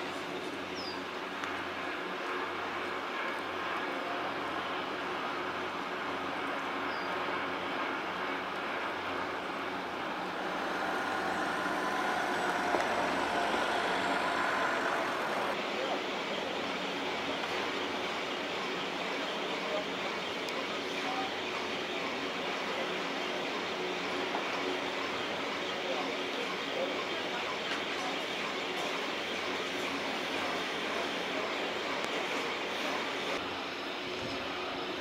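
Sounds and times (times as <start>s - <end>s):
faint mechanical whine: 0.0s - 35.0s
lift haul rope mechanical rumble: 0.0s - 35.0s.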